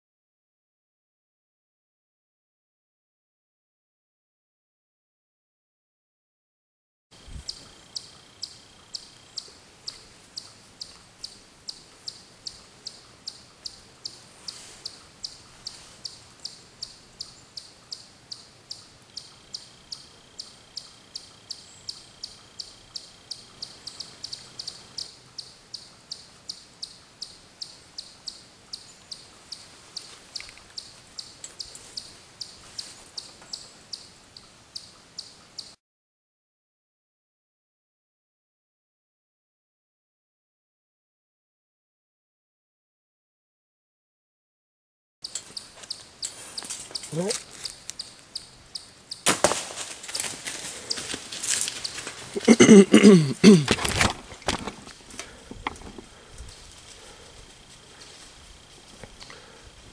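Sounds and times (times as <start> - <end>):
faint outdoor background: 7.1 - 35.8, 45.2 - 59.9.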